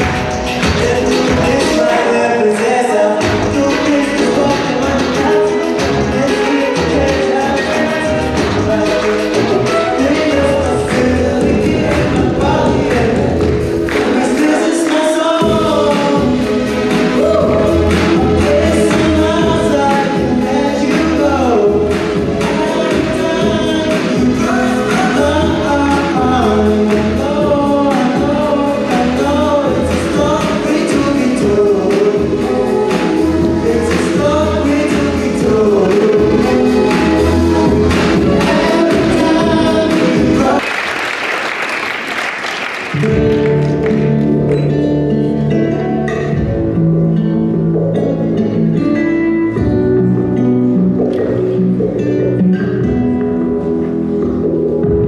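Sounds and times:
amplified backing music with bass: 0.0 - 40.6, 42.9 - 55.0
held instrumental notes: 0.0 - 40.6
man singing into microphone: 0.0 - 40.6
live pop song with band: 0.0 - 40.8
audience applause: 13.8 - 15.4, 40.6 - 44.6.

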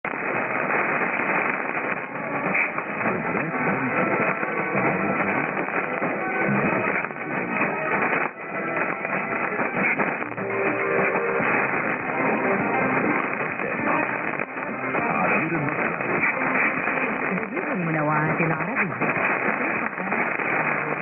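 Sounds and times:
radio static: 0.0 - 21.0
faint radio guitar music: 0.1 - 21.0.

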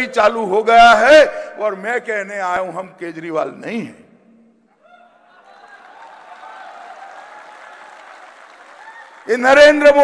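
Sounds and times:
audience applauding: 5.4 - 10.0.

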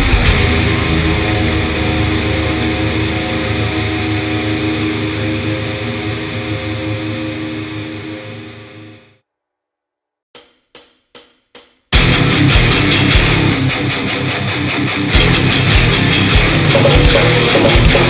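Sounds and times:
punk band playing loud: 0.0 - 4.0, 12.0 - 18.0
distorted guitar chord ringing: 0.0 - 9.2, 12.0 - 18.0.

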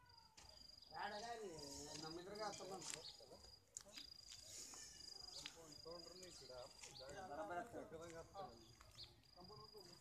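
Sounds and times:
high insect trill: 0.0 - 10.0.

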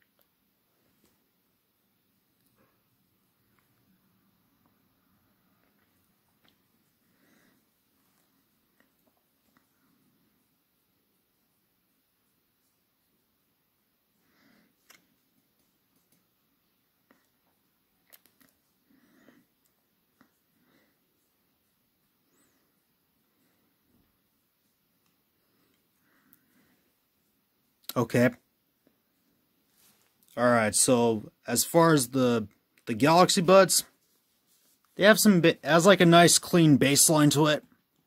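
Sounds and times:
faint soft rustles and clicks: 0.0 - 30.4, 33.8 - 35.0.

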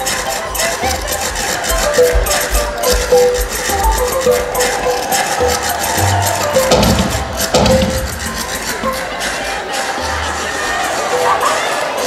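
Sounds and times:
bouncy stage song music: 0.0 - 12.0.

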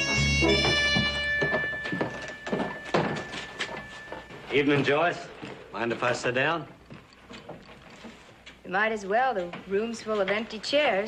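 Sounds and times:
held music note: 0.0 - 5.0
footsteps on wooden boardwalk: 0.0 - 8.4.

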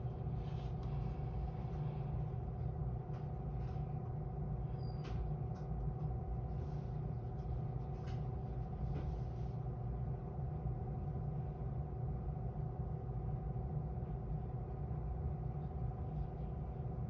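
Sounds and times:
electric train hum and rumble: 0.0 - 17.0.

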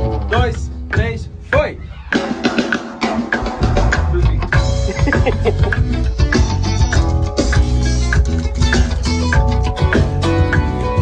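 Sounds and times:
heavy electric bass line: 3.4 - 11.0.

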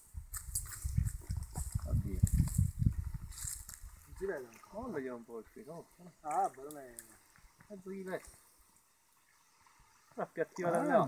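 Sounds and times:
wind buffeting microphone: 0.0 - 4.9.

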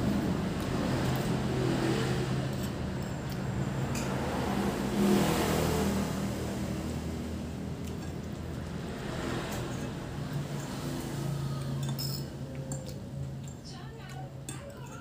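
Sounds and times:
vehicle engine humming: 0.0 - 15.0
spoon clinking ceramic bowl: 11.6 - 13.6.

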